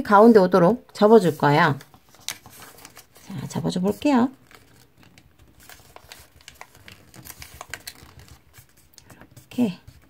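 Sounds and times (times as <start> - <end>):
paper being folded and creased: 0.9 - 10.0.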